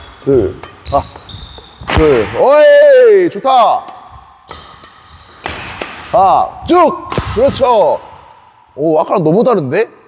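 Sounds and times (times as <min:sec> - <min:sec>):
rackets hitting shuttlecock: 0:00.0 - 0:02.4, 0:03.6 - 0:08.3.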